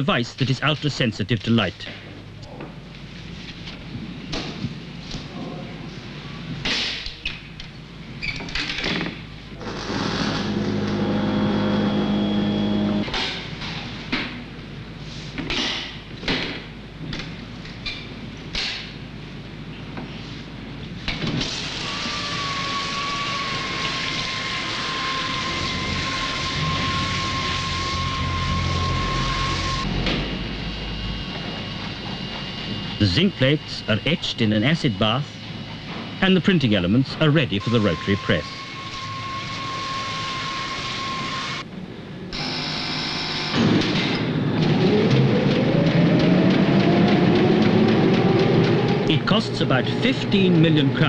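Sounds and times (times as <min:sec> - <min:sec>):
steady high hum: 0:00.0 - 0:08.2, 0:09.1 - 0:51.0
thin high whine: 0:09.5 - 0:13.2, 0:21.6 - 0:41.7, 0:42.3 - 0:46.0.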